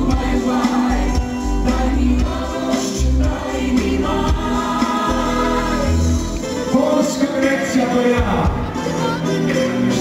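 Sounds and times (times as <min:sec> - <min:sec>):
live pop band with steady beat: 0:00.0 - 0:10.0
several singers: 0:00.0 - 0:10.0.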